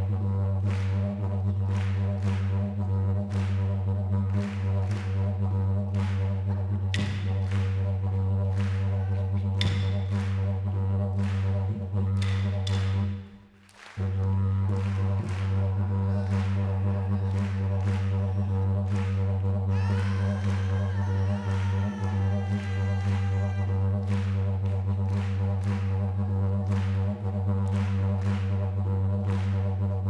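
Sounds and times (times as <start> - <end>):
didgeridoo drone: 0.0 - 30.0
wooden clapsticks: 8.8 - 10.5, 12.2 - 14.0
person singing: 19.7 - 23.8.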